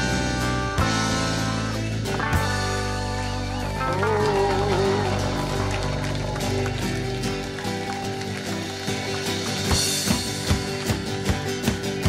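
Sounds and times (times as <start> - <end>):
live country-rock band playing: 0.0 - 12.0
steady drum beats: 0.0 - 12.0.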